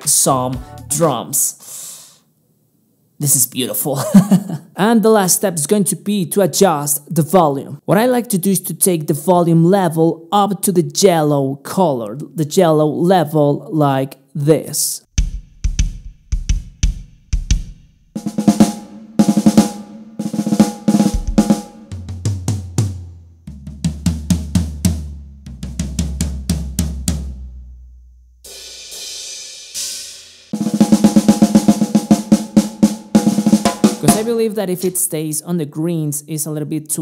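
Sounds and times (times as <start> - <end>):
kick drum strokes: 15.1 - 27.5, 30.6 - 34.4
tom drum hits: 15.1 - 27.5, 30.6 - 34.4
fast snare drum strokes: 15.2 - 27.2, 30.5 - 35.0
cymbal wash: 28.5 - 34.3.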